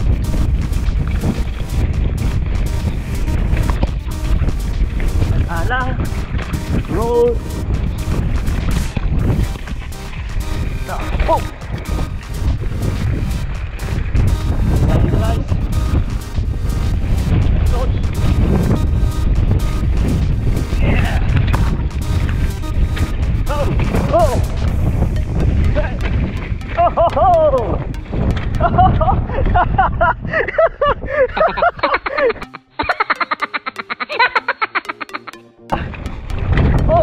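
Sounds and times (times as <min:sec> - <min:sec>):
wavering pitched sound: 0:00.0 - 0:28.7, 0:32.4 - 0:36.6
wind rushing over microphone: 0:00.0 - 0:31.8.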